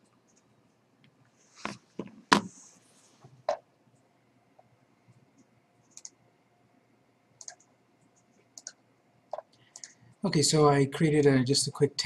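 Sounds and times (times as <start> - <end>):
faint computer mouse clicks: 5.4 - 6.2, 7.4 - 10.0.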